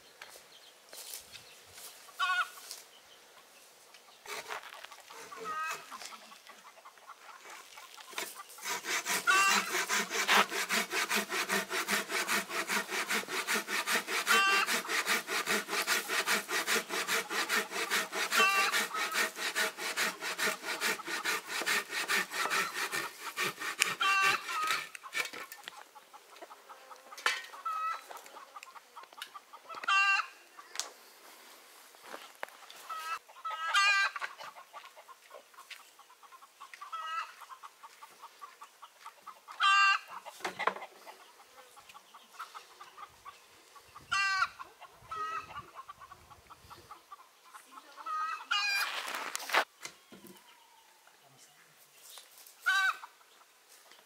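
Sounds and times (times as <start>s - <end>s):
chickens calling: 2.1s - 2.8s, 5.1s - 30.4s, 32.8s - 49.0s, 52.6s - 53.6s
hand saw cutting wood: 4.3s - 4.6s, 8.2s - 25.5s.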